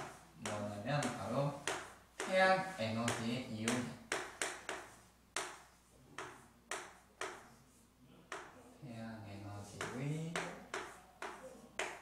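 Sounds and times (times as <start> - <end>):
chalk tapping on chalkboard: 0.0 - 8.6, 9.6 - 12.0.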